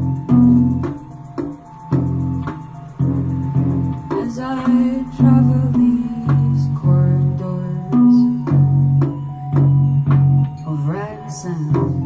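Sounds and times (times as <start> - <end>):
electric bass guitar: 0.0 - 10.8
woman singing: 4.1 - 8.6, 10.6 - 12.0.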